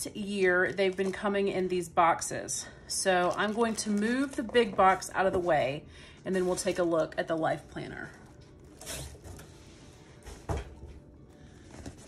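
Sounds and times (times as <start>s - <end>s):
cardboard boxes rustling: 8.7s - 12.0s.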